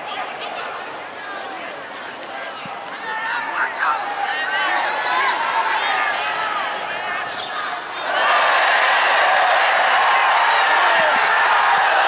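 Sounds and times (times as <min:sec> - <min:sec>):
crowd shouting and calling: 0:00.0 - 0:12.0.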